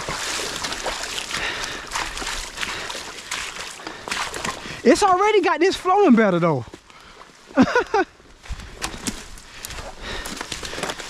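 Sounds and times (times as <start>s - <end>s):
boots splashing through water: 0.0s - 5.5s, 8.4s - 11.0s
rain pattering on water: 0.0s - 5.6s.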